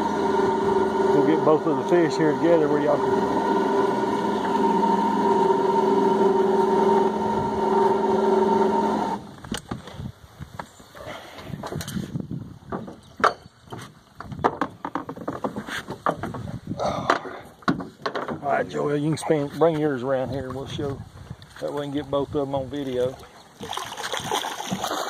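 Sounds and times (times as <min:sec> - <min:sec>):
boat motor running: 0:00.0 - 0:09.5
water splashing: 0:22.7 - 0:25.0.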